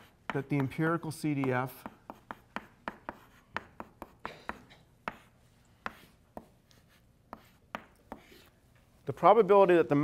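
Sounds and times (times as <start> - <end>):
chalk tapping on blackboard: 0.0 - 8.5.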